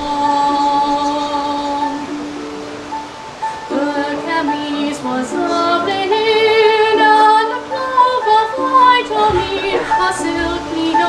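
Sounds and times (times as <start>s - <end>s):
woman singing: 0.0s - 2.3s, 3.6s - 11.0s.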